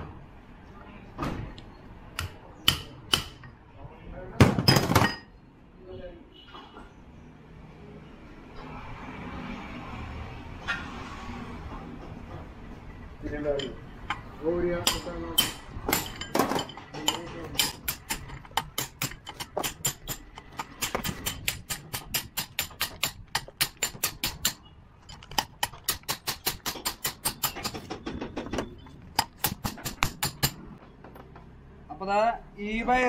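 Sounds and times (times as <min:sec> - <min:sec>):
hammer striking metal shaft: 0:14.8 - 0:28.0.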